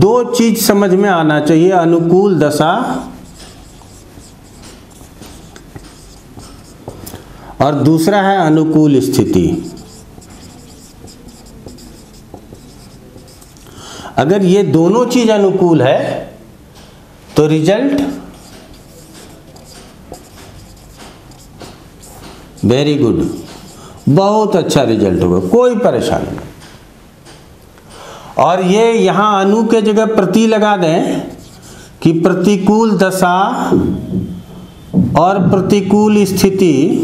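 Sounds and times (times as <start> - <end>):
marker pen writing on whiteboard: 2.7 - 7.3, 8.0 - 13.7, 17.9 - 24.8, 31.1 - 31.9.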